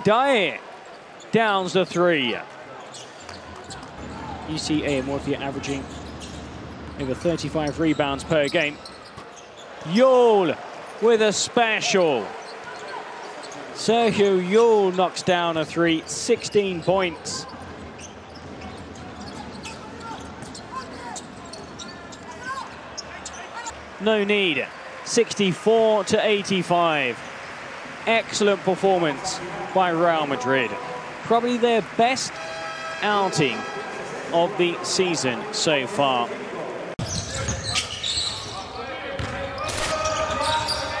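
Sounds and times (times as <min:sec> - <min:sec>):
sneaker squeaks: 0:02.8 - 0:09.9, 0:12.3 - 0:13.8, 0:16.0 - 0:23.8, 0:37.0 - 0:41.0
ball bouncing on court: 0:06.0 - 0:07.2, 0:18.0 - 0:22.6, 0:39.2 - 0:39.5
arena crowd murmur: 0:09.4 - 0:41.0.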